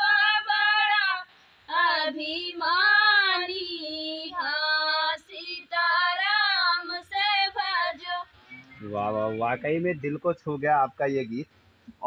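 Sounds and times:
woman singing unaccompanied: 0.0s - 8.3s.

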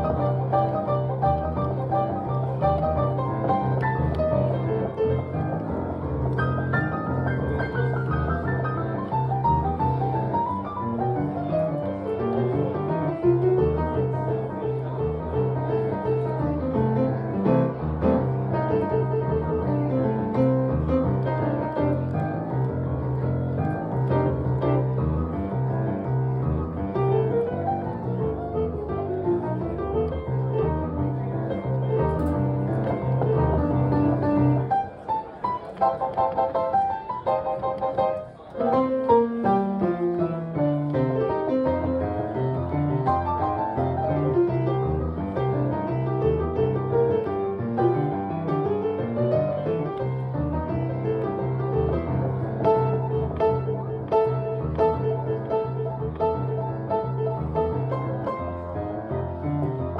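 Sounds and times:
acoustic piano playing: 0.0s - 59.9s.

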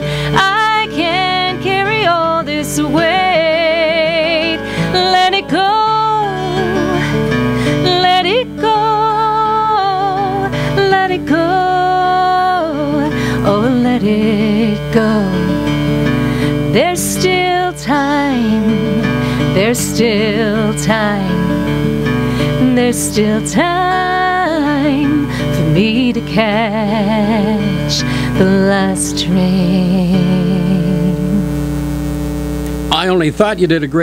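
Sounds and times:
woman singing: 0.0s - 31.6s
acoustic guitar: 0.0s - 34.0s.

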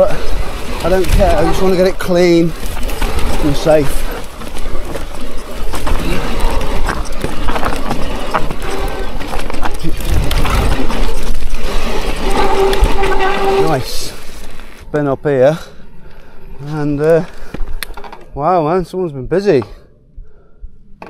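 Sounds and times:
bike rumbling over rough ground: 0.0s - 19.5s
tyres and bike rattling: 0.0s - 21.0s
disc brake squealing: 12.1s - 14.1s.

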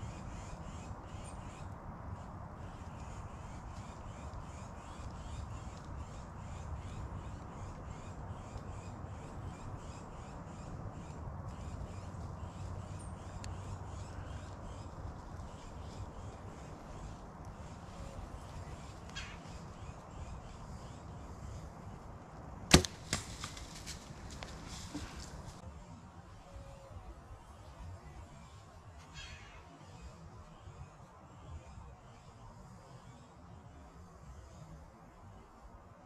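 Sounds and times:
bow string release crack: 22.7s - 25.4s
crackling in brush: 22.7s - 25.6s.

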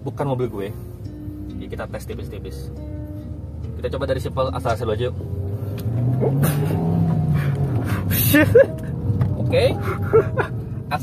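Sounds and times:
car engine pulling away: 0.8s - 11.0s.

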